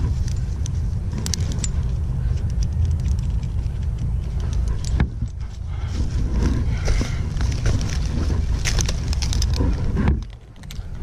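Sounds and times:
metal carabiners clinking: 0:00.0 - 0:11.0
wind rumbling on microphone: 0:00.0 - 0:11.0.

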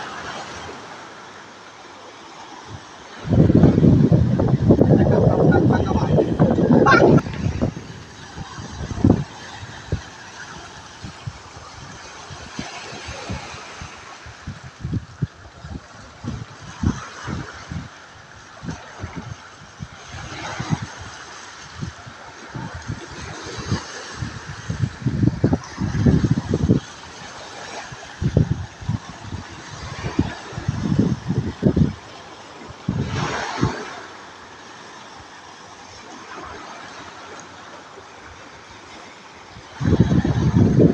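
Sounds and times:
sea waves washing over rocks: 0:00.0 - 0:40.9
wind buffeting microphone: 0:02.7 - 0:34.0, 0:39.4 - 0:40.9.

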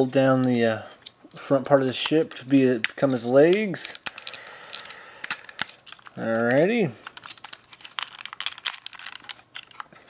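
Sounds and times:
plastic toy parts clicking: 0:02.0 - 0:06.2, 0:07.0 - 0:09.9.

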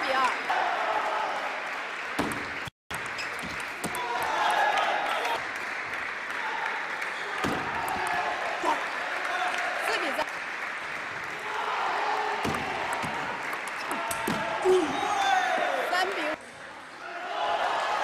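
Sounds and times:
audience applauding: 0:00.0 - 0:16.4.

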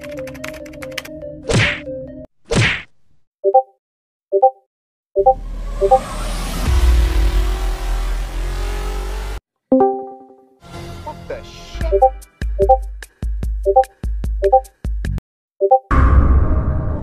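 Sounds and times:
keyboard typing clicks: 0:00.0 - 0:01.2
message notification pings: 0:09.7 - 0:10.4.

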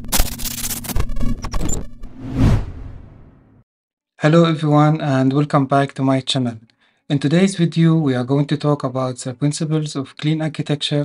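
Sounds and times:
whoosh sound effect: 0:02.1 - 0:03.4.

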